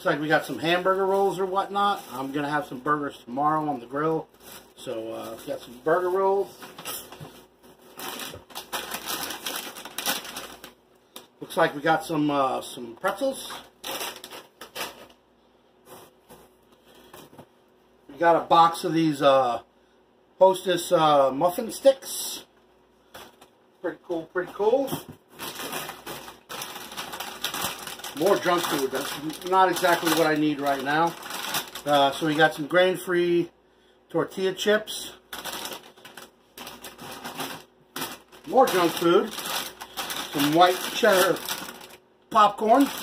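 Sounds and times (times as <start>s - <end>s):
plastic packaging crinkling: 0.1s - 2.9s, 3.6s - 11.3s, 13.0s - 15.2s, 24.4s - 32.7s, 34.9s - 43.0s.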